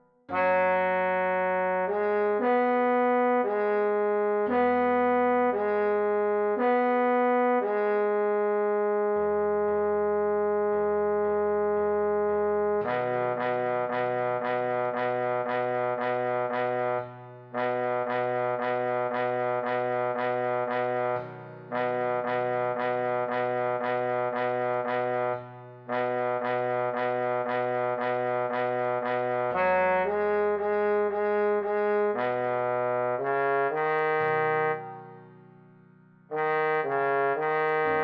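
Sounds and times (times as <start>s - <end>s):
trombone melody: 0.3s - 35.2s, 36.3s - 38.0s
backing track: 4.5s - 35.2s.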